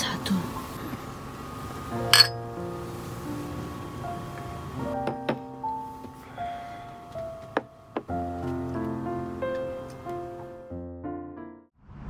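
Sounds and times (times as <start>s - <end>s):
beer glasses clinking: 2.1s - 2.5s.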